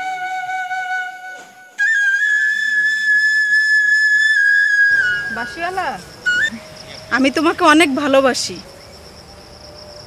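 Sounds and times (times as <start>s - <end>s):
flute music: 0.0s - 6.8s.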